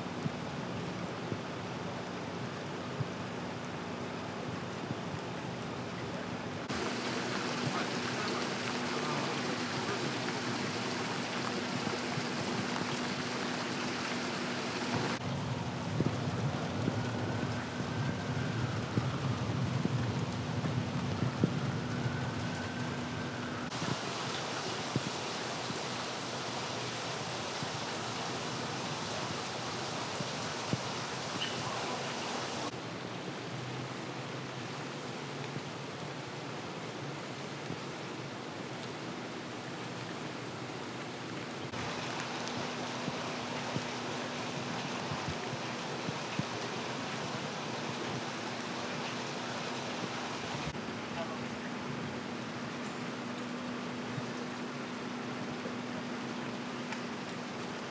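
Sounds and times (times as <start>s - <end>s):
rain hiss on wet street: 0.0s - 57.9s.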